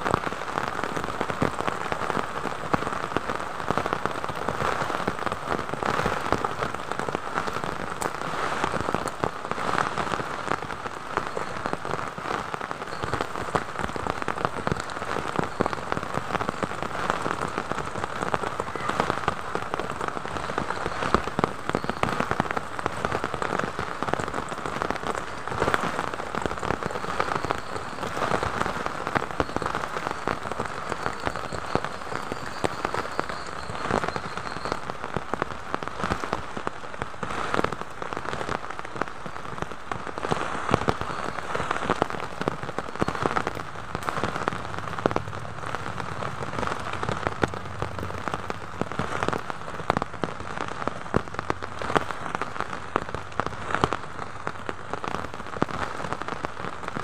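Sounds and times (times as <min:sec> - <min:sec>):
heavy rain: 0:00.0 - 0:57.0
raindrops spattering close by: 0:00.0 - 0:57.0.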